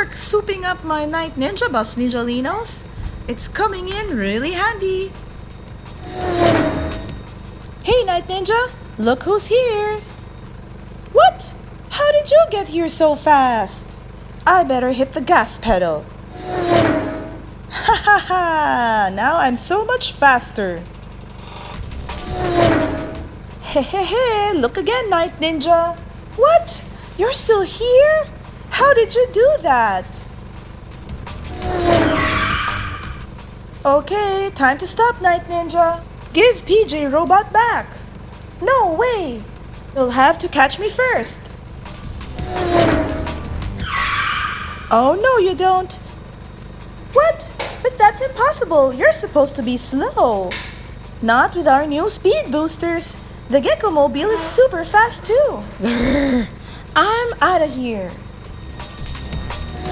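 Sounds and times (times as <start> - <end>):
background music: 0.0 - 59.9
car zoom sound: 16.3 - 17.5, 21.4 - 23.3
car speeding past: 16.3 - 17.6, 21.5 - 23.5, 31.2 - 33.3, 42.2 - 44.9.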